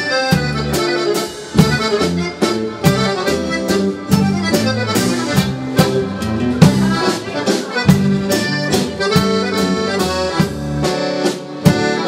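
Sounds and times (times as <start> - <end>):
button accordion playing: 0.0 - 12.0.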